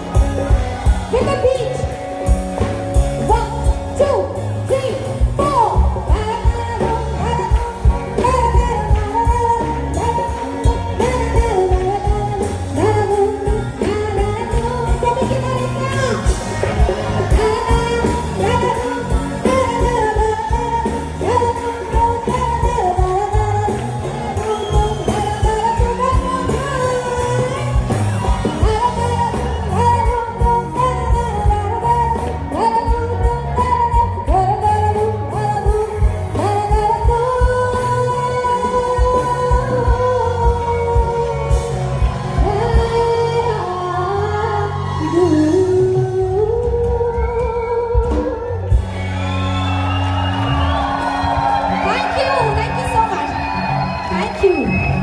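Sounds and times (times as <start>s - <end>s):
band playing: 0.0s - 55.0s.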